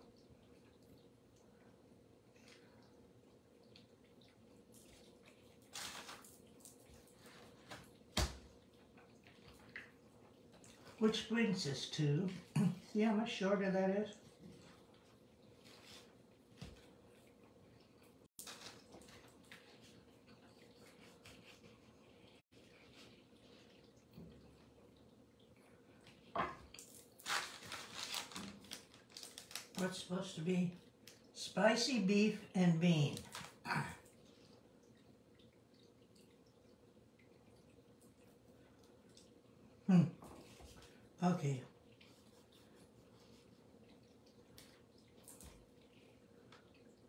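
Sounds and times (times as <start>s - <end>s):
person chewing: 14.5s - 29.7s, 41.8s - 47.0s
plastic wrapper crinkling: 26.8s - 30.1s.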